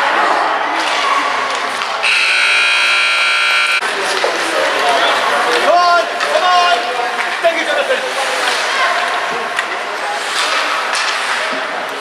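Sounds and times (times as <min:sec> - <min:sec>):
loud electronic buzzer tone: 0:02.0 - 0:03.8.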